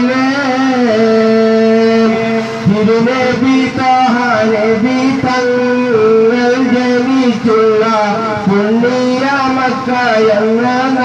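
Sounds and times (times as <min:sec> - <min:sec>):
man singing into microphone: 0:00.0 - 0:11.0.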